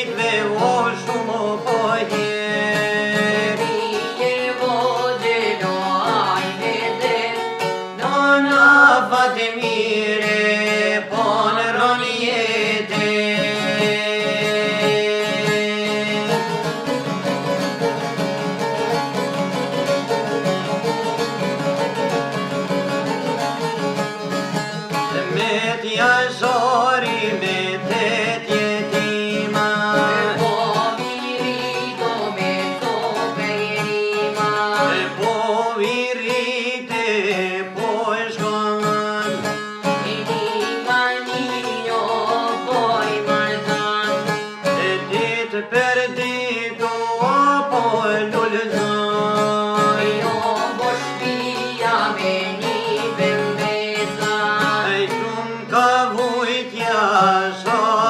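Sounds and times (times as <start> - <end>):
men singing folk song: 0.0 - 17.9, 24.8 - 58.0
plucked lutes: 0.0 - 58.0.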